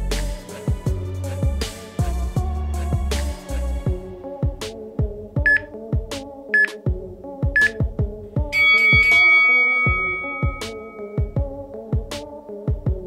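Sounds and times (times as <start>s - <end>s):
electronic music with kick drum: 3.9s - 13.0s
multi-tone timer signal: 5.5s - 5.7s, 6.6s - 6.8s, 7.6s - 7.8s, 8.6s - 11.4s
short timer beeps: 5.5s - 5.7s, 6.6s - 6.8s, 7.6s - 7.8s, 8.6s - 11.3s.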